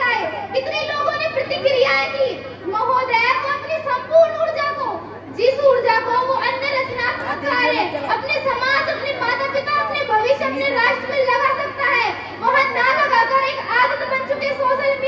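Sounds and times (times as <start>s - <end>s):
girl speaking into a microphone: 0.0s - 15.0s.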